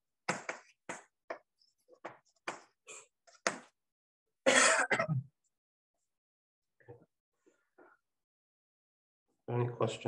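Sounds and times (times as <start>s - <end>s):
man clearing his throat: 4.5s - 5.3s.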